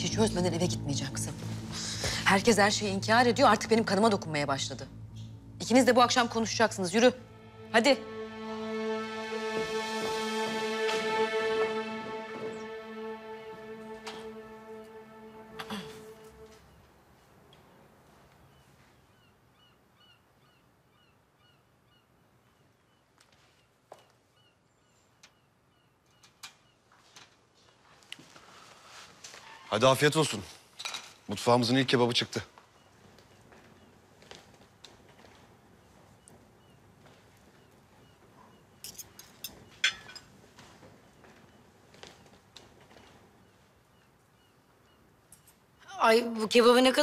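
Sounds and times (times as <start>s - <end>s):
cutlery and glassware clinking: 38.8s - 40.3s.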